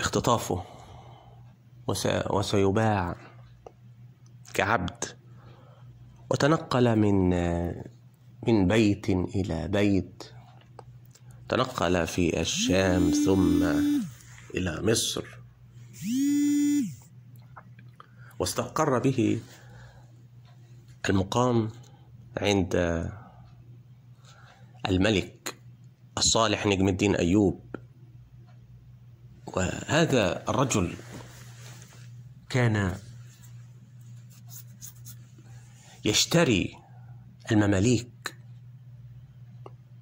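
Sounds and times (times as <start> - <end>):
person holding a drawn-out note: 12.5 - 14.5.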